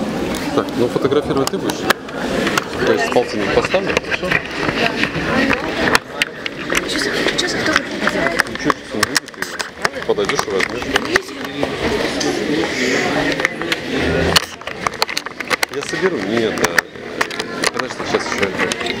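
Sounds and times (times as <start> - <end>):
people talking indistinctly: 0.0 - 19.0
sharp clicks and knocks: 3.6 - 12.3, 13.3 - 19.0.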